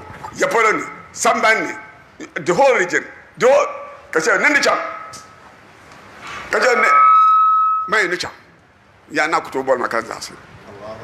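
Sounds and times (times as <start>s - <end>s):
man talking over loudspeakers: 6.5s - 7.0s
microphone feedback whistle: 6.6s - 8.3s.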